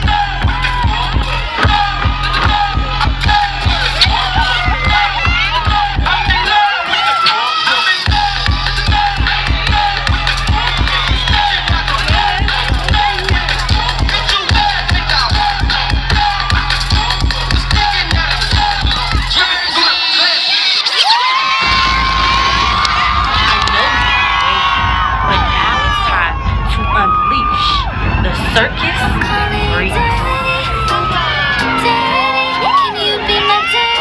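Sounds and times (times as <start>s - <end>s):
crowd cheering and shouting: 0.0s - 34.0s
dance music with heavy bass: 0.0s - 34.0s.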